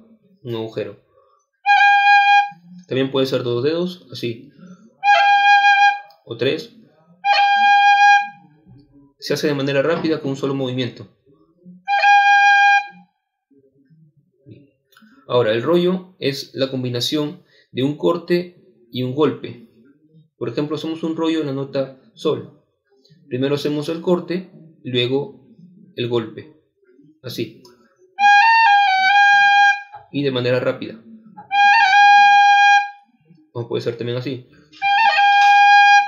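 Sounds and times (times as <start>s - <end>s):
tin whistle high note: 34.8s - 36.0s.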